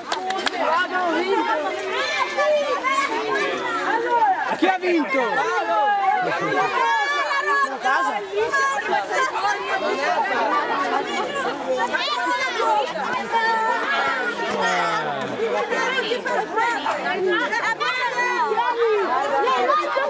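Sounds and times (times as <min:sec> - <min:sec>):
children's voices babbling: 0:00.0 - 0:20.0.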